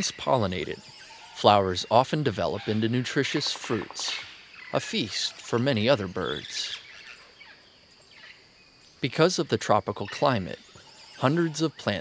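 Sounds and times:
high insect drone: 0:00.0 - 0:12.0
soft bird chirps: 0:00.0 - 0:12.0.

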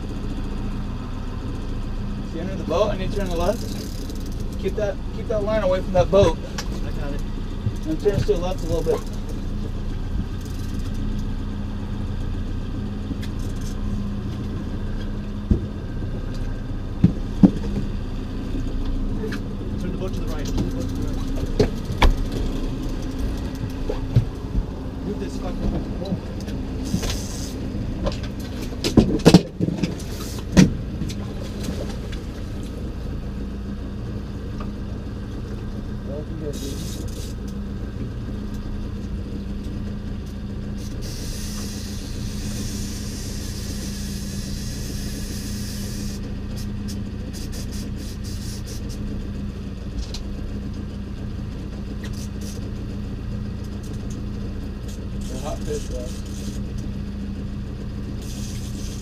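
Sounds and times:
outboard motor running: 0:00.0 - 0:59.0.

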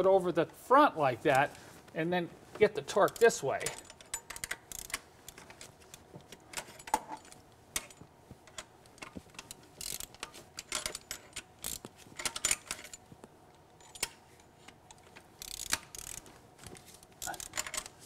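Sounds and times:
ratchet wrench clicking: 0:03.0 - 0:05.6, 0:09.8 - 0:12.9, 0:13.8 - 0:16.3, 0:17.1 - 0:17.9.

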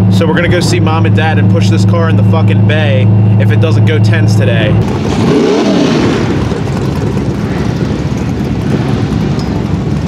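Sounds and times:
car engine idling with choppy lope: 0:00.0 - 0:10.0.

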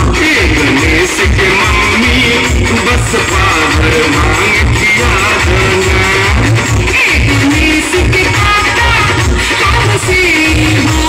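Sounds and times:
heavy bass beat: 0:00.0 - 0:11.0
loud music with sung vocal: 0:00.0 - 0:11.0.

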